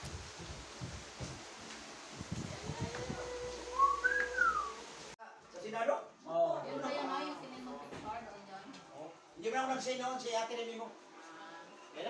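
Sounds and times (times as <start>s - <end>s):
person whistling: 3.8s - 4.8s.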